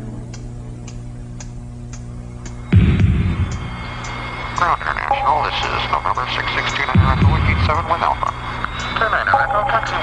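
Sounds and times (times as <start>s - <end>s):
electrical hum: 0.0s - 10.0s
deep thump: 2.8s - 3.6s.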